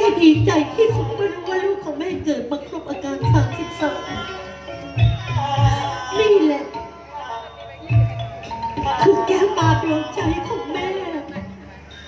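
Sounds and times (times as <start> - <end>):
wavering melody line: 0.0 - 12.0.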